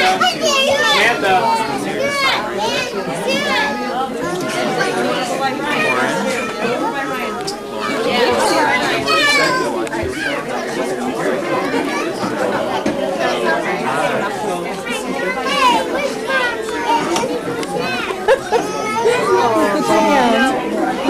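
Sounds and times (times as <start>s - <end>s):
crowd of children and adults chattering: 0.0s - 21.0s.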